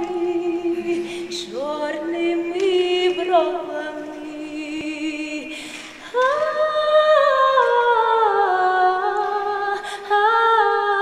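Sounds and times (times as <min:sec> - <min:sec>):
woman singing folk song: 0:00.0 - 0:11.0.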